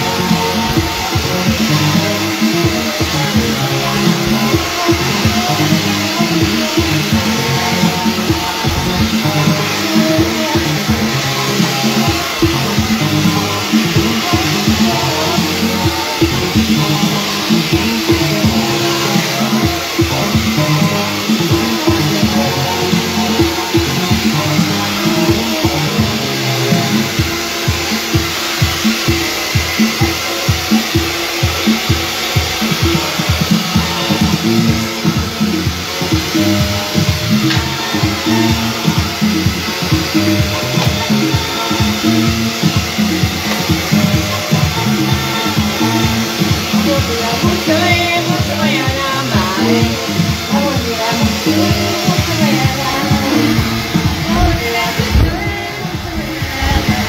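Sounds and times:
hair dryer blowing: 0.0 - 57.0
music with steady beat: 0.0 - 57.0.

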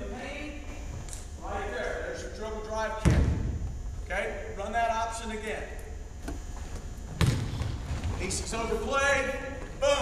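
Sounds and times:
basketball thud on gym floor: 7.2 - 7.8.

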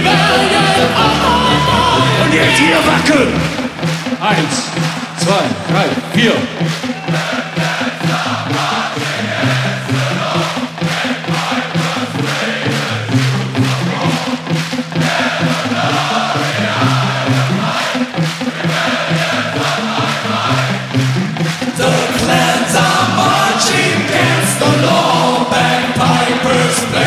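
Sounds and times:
crowd chanting: 0.0 - 27.0
heavy metal band playing: 0.0 - 27.0.

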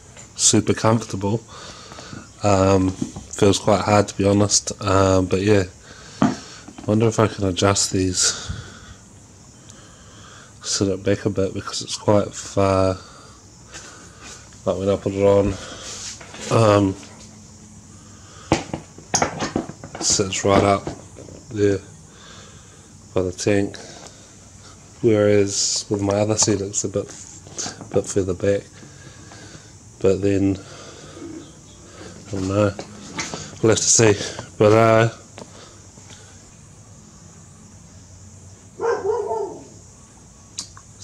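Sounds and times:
clicks and knocks of seat: 18.5 - 21.5.

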